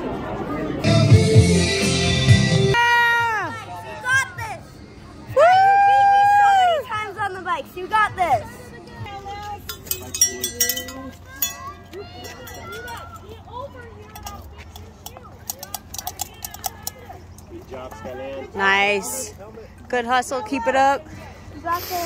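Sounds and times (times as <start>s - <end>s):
high woo shout: 5.3s - 6.9s
spectators cheering: 5.3s - 6.9s
shouts of encouragement: 5.3s - 7.2s.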